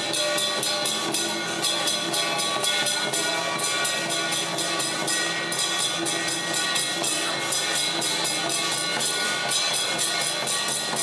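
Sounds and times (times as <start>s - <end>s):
cymbals clashing: 0.0s - 11.0s
drums: 0.0s - 11.0s.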